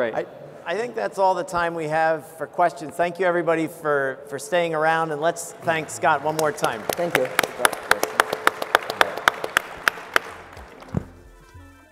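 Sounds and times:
audience applauding: 5.6s - 11.0s
steady hand clapping: 5.7s - 11.1s.

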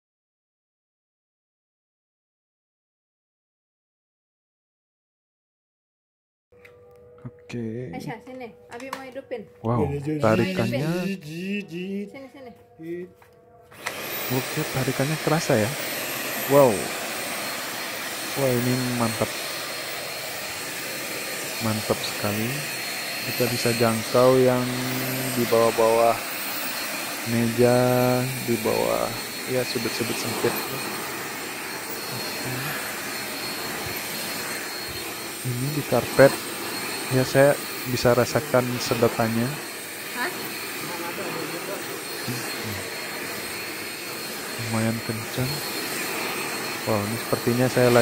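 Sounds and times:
vacuum cleaner motor whining: 10.2s - 11.2s, 13.6s - 48.0s.

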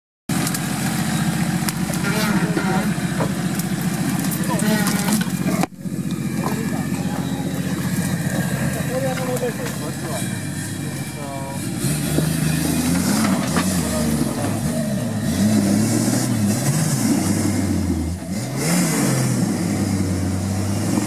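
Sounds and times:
engine running steadily: 0.3s - 21.0s
people calling: 0.8s - 11.8s.

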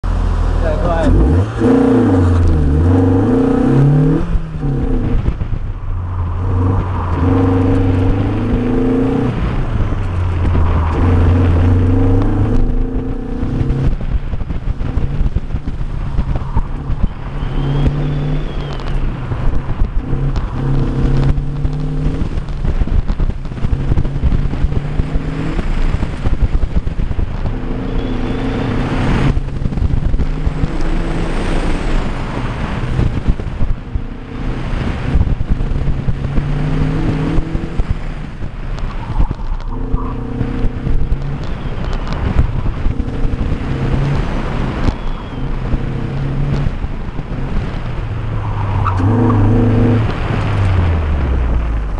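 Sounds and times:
car engine revving: 0.0s - 51.9s
wind buffeting microphone: 0.0s - 51.9s.

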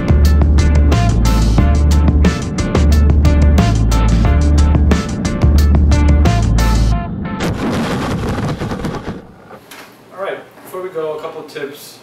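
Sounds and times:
music with heavy bass and drums: 0.0s - 9.0s.

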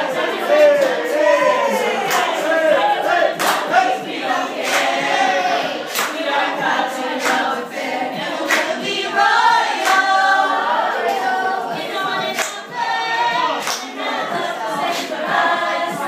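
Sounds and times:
women singing together: 0.0s - 16.0s.

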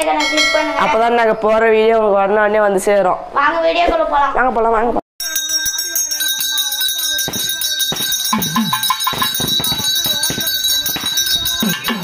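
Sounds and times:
voices: 0.0s - 12.0s
hand bell ringing: 0.2s - 0.9s, 5.2s - 12.0s
sharp strikes: 7.3s - 12.0s.

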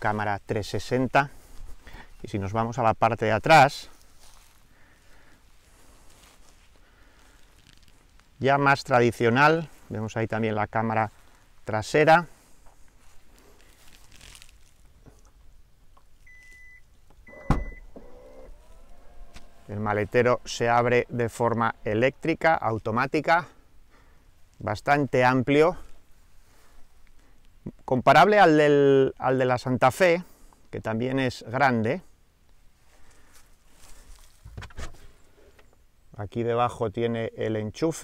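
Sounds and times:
faint rustle: 0.0s - 2.6s, 3.7s - 27.7s, 32.0s - 35.9s
short warning beeps: 16.3s - 17.9s
liftgate motor hum: 17.2s - 23.2s.

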